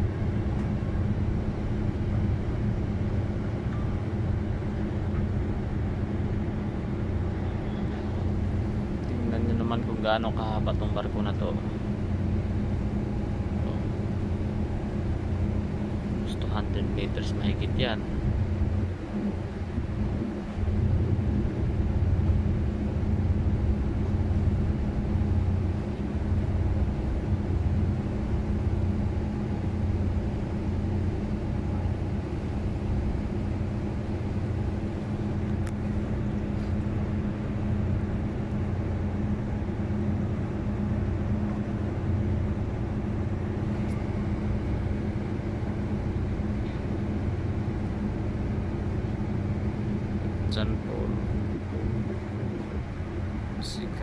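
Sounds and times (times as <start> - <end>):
diesel engines droning: 0.0 - 54.0.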